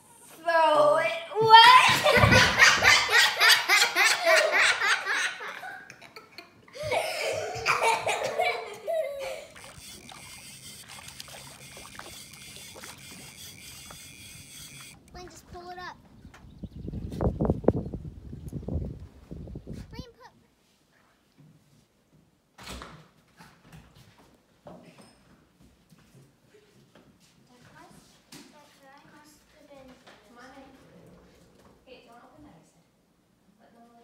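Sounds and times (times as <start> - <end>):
child laughing: 1.6 - 9.7
low rumbling gusts: 15.3 - 20.0.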